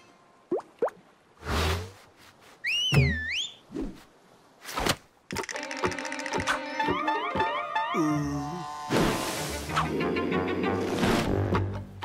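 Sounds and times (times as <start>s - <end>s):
rising and dipping whistle: 2.6s - 3.6s.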